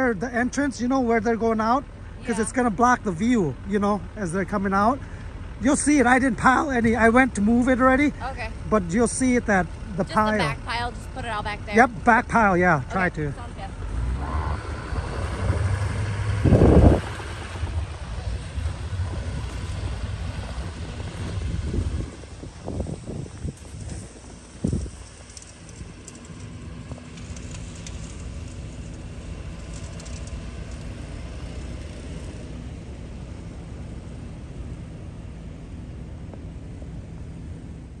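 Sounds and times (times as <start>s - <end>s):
pickup truck engine rumbling: 0.0s - 38.0s.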